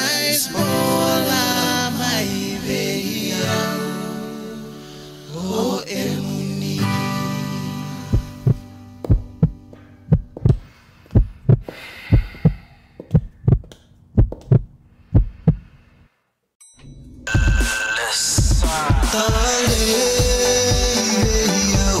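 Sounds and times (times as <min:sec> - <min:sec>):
heartbeat thumps: 0:08.2 - 0:15.6, 0:18.4 - 0:22.0.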